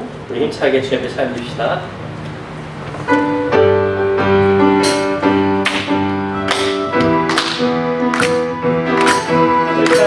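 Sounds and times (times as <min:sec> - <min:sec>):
piano and guitar chords: 0:02.6 - 0:10.0.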